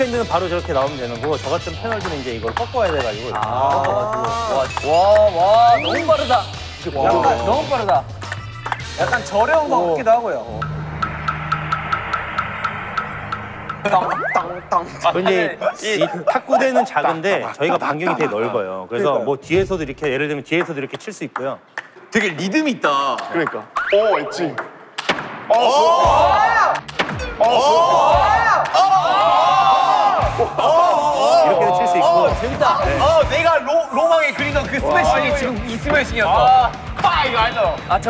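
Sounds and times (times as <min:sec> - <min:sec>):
men exclaiming and whooping: 0:02.8 - 0:08.1, 0:13.8 - 0:18.8, 0:25.5 - 0:38.0.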